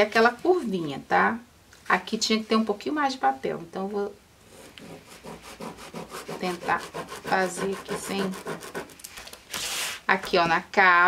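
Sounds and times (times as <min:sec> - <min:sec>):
pen scratching on paper: 0:04.5 - 0:09.0
paper rubbing under hand: 0:04.5 - 0:10.0.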